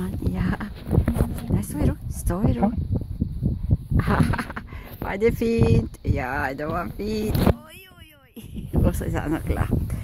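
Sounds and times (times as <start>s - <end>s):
wind on microphone: 0.0s - 10.0s.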